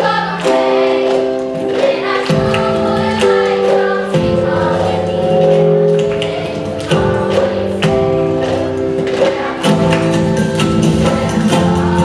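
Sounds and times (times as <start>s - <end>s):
girls singing together: 0.0s - 12.0s.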